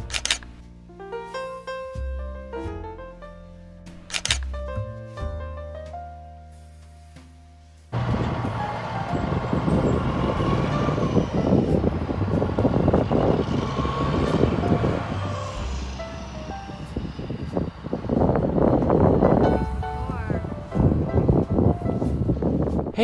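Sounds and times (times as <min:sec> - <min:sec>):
truck diesel engine pulling away: 0:07.9 - 0:20.0
tyre and road noise: 0:07.9 - 0:23.0.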